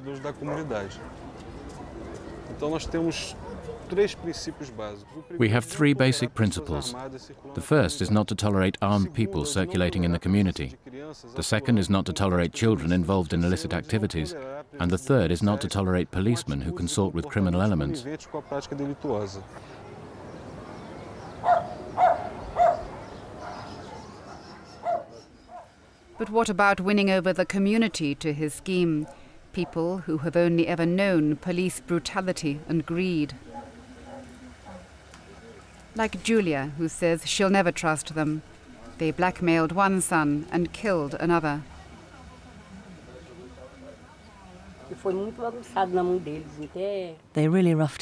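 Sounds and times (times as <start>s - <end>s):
outdoor background noise: 0.0s - 48.0s
town background hum: 0.0s - 48.0s
dog barking: 3.2s - 3.9s, 21.4s - 25.7s, 33.4s - 34.9s
pigeon cooing: 21.3s - 25.7s, 33.4s - 35.7s.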